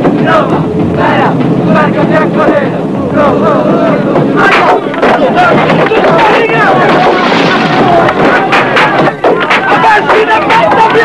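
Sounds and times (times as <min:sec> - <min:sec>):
crowd shouting and chanting: 0:00.0 - 0:11.0
moving train hum: 0:00.0 - 0:11.0.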